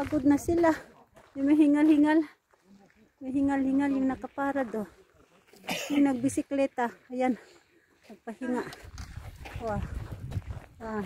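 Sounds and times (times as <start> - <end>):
wind rumbling on microphone: 8.8 - 11.0.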